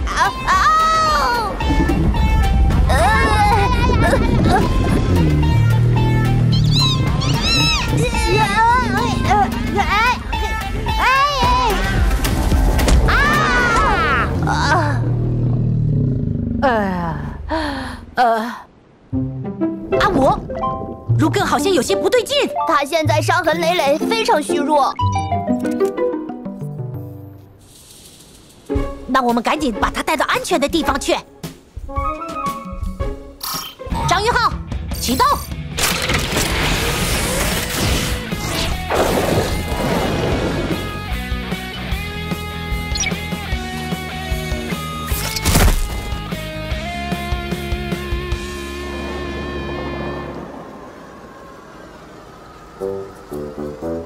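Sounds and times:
background music: 0.0 - 15.2, 18.9 - 27.7, 28.4 - 50.7, 52.6 - 54.0
cartoon dugong moaning cries: 5.8 - 9.5
low steady drone: 47.8 - 54.0
busy rush of noise: 48.5 - 54.0.

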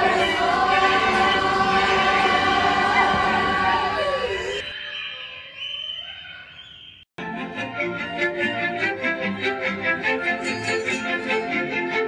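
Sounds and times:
backing music: 0.0 - 4.6, 7.2 - 12.0
children's choir singing: 0.0 - 4.7.

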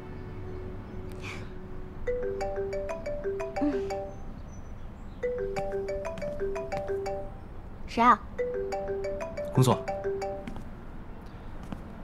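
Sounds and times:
marimba phone ringtone: 2.1 - 4.4, 5.2 - 7.5, 8.4 - 10.6.

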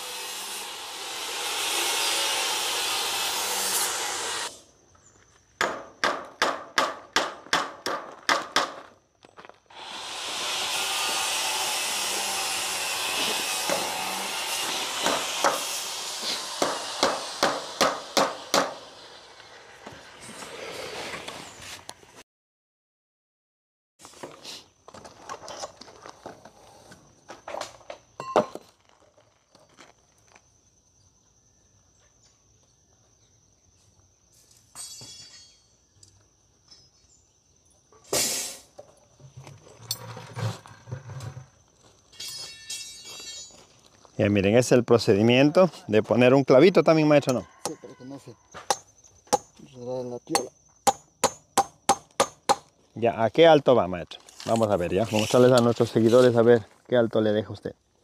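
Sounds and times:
hammer hitting nail into wood: 5.6 - 8.8, 16.6 - 18.8, 50.4 - 52.7.

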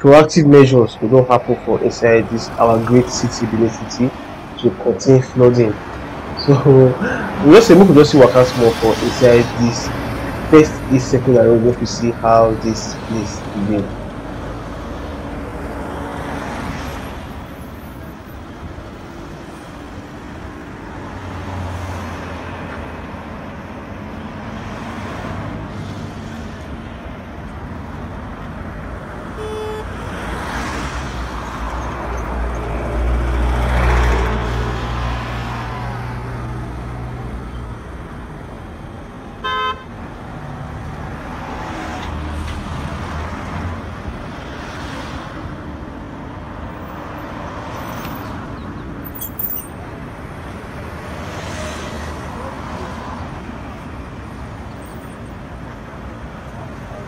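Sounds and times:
cars driving past: 0.0 - 57.0
car horn toots: 29.4 - 30.0, 39.4 - 39.9.

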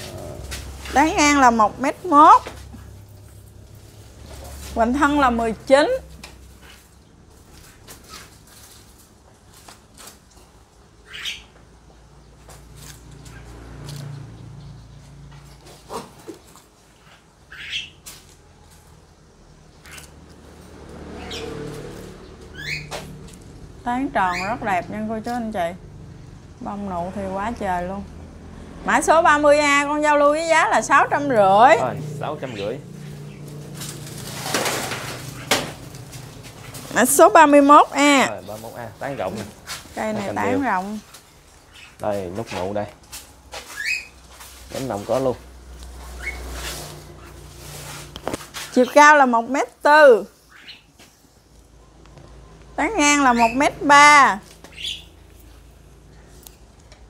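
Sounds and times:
rustling and scraping of pots: 0.0 - 25.6, 28.6 - 57.0
bird chirps: 22.5 - 23.1, 54.6 - 55.2.

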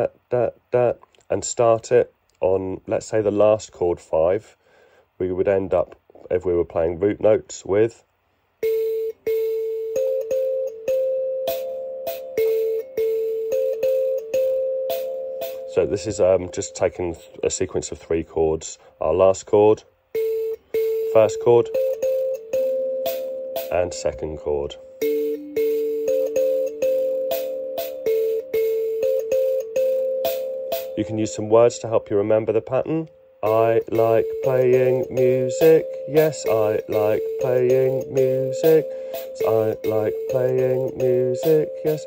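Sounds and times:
thumb piano plucked with buzzing: 8.6 - 17.2, 20.1 - 24.3, 24.9 - 31.2, 33.0 - 42.0.

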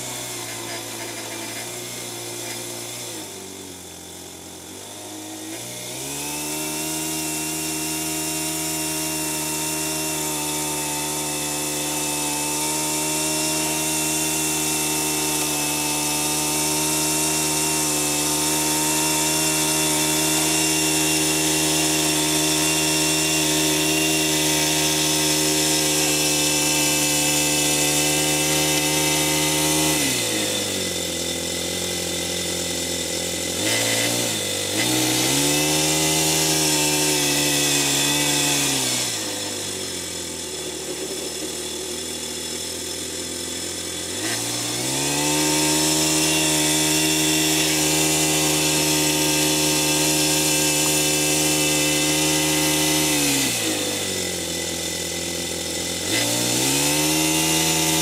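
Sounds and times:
small model engine revving: 0.0 - 58.0.

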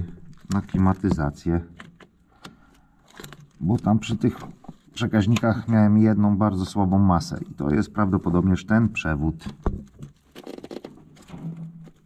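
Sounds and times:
crackling of brittle wire insulation: 0.0 - 6.5, 9.4 - 12.0.

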